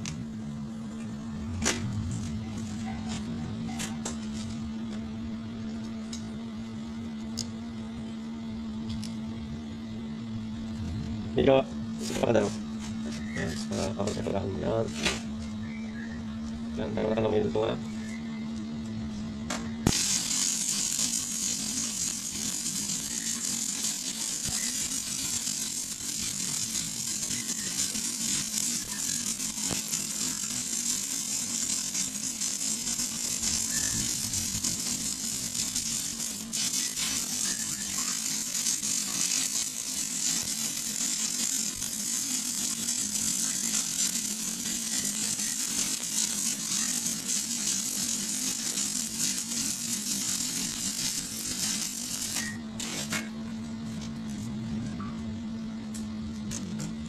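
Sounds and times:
welding arc crackling: 0.0 - 15.6, 16.4 - 54.5.

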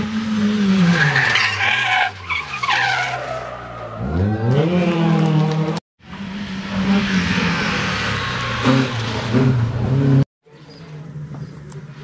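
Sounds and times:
rally car engine: 0.0 - 12.0
tyre and road noise: 0.0 - 12.0.

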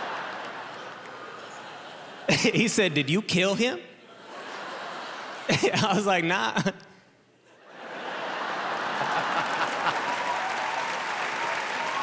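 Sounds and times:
audience laughing and applauding: 0.0 - 2.5, 7.7 - 12.0.

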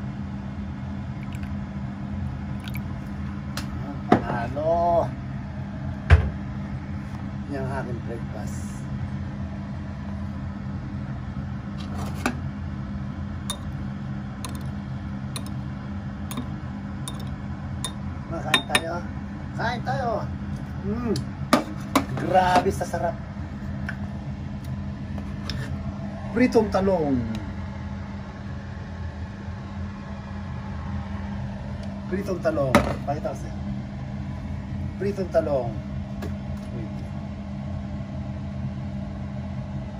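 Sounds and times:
low machine hum: 0.0 - 39.9.

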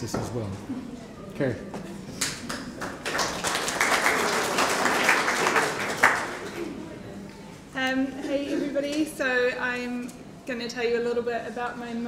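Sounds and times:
audience applauding: 2.2 - 6.8.

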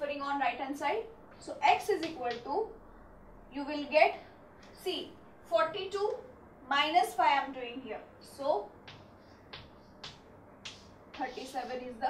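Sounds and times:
chalk scraping on chalkboard: 10.7 - 12.0.

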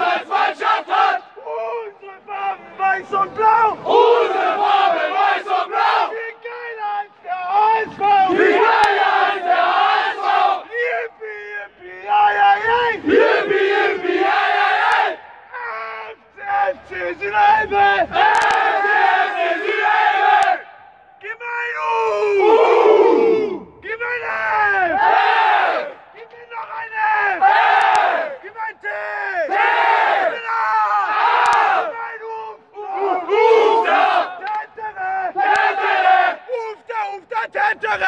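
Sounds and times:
men chanting together: 0.0 - 1.3, 7.8 - 10.8, 12.6 - 15.2, 32.8 - 34.4, 35.2 - 36.4.

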